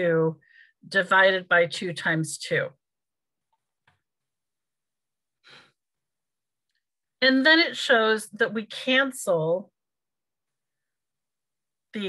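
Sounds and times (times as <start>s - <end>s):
faint breath: 5.4s - 5.8s.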